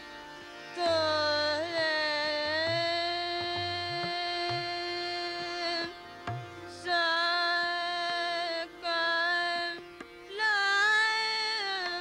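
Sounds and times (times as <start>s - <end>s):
harmonium: 0.0s - 12.0s
soft tabla strokes: 0.8s - 7.0s.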